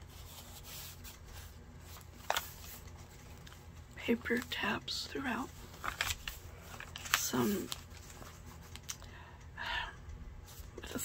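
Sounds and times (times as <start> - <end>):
paper pages turning: 0.0 - 4.7, 5.3 - 9.0
low steady hum: 0.0 - 11.0.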